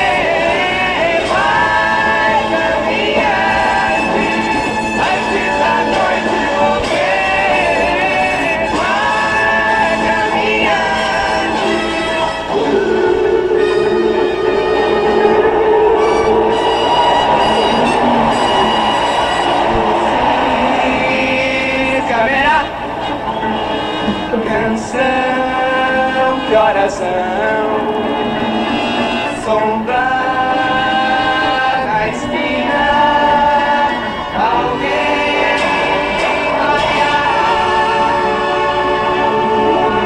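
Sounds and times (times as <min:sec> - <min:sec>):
voices singing in harmony: 0:00.0 - 0:40.0.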